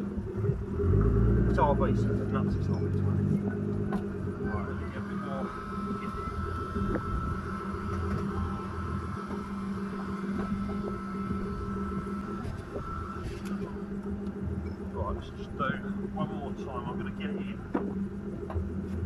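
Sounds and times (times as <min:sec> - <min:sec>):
car engine idling: 0:00.0 - 0:19.0
thin high whine: 0:00.0 - 0:19.0.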